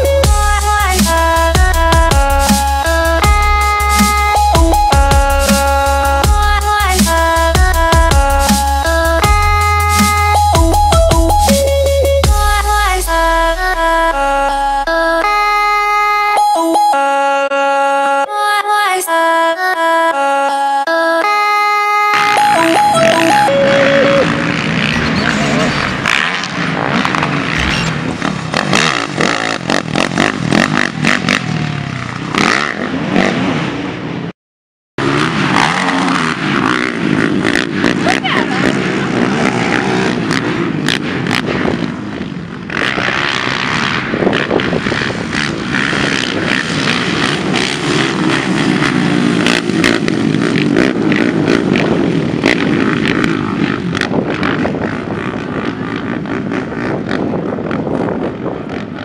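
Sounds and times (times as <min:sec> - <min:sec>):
quad engines revving: 0:00.0 - 0:15.4, 0:22.2 - 0:34.0, 0:35.0 - 0:59.0.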